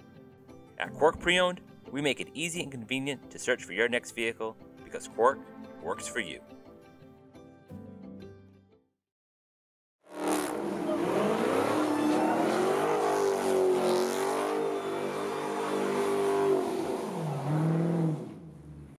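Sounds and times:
car engine revving hard: 10.1s - 19.0s.

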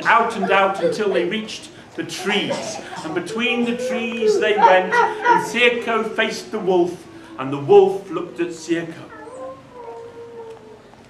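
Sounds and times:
man whining softly: 0.0s - 10.9s.

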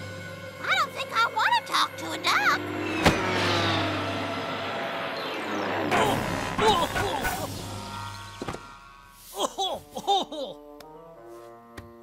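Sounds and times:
cartoon sharp hit: 5.9s - 9.0s.

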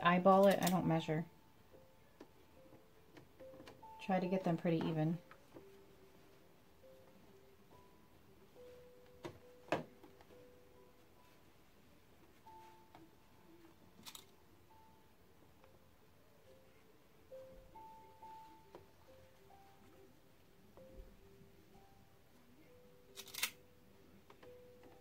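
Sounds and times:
faint background music: 0.0s - 25.0s.

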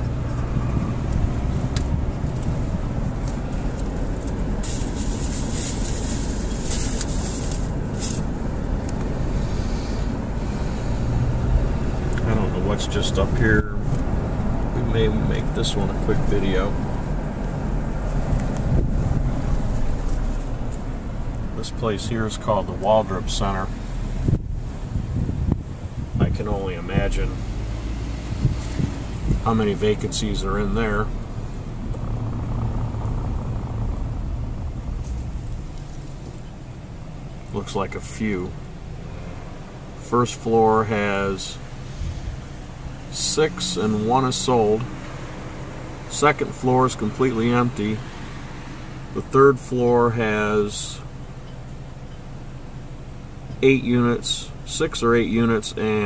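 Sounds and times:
wind buffeting microphone: 0.0s - 6.5s, 16.8s - 21.5s, 24.2s - 29.7s, 31.1s - 36.9s
car driving road and engine noise: 0.0s - 56.0s.

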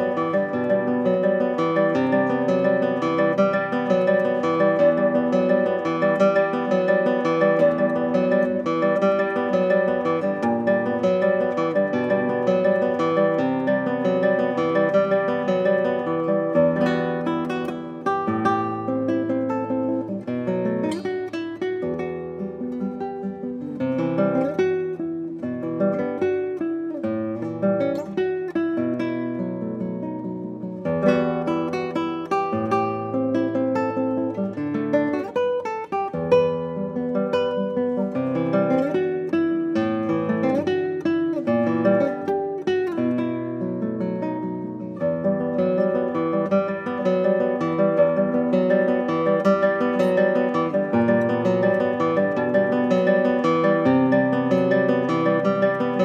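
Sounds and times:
fingerpicked classical guitar: 0.0s - 56.0s.

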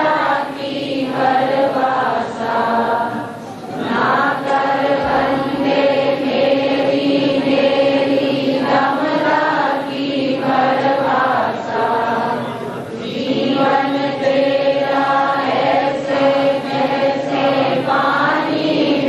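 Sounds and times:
crowd singing a hymn: 0.0s - 19.0s.

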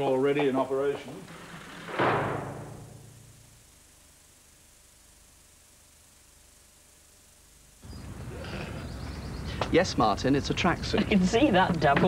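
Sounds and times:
noisy outdoor background: 0.0s - 12.0s
tape hiss: 0.0s - 12.0s
low hum: 1.2s - 9.6s.

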